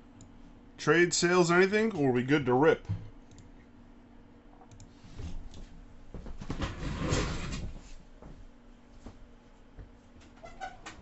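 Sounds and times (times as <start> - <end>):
faint electrical hum: 0.0 - 11.0.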